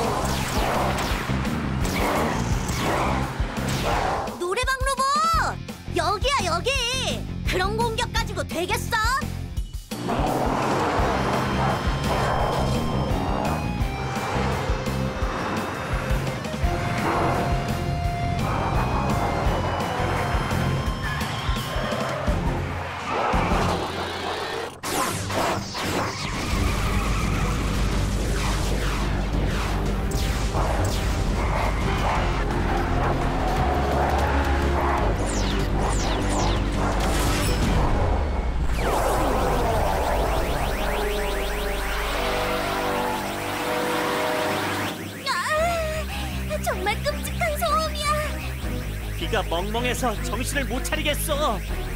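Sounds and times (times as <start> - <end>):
background music: 0.0 - 51.9
vehicle sound effects: 9.9 - 51.9.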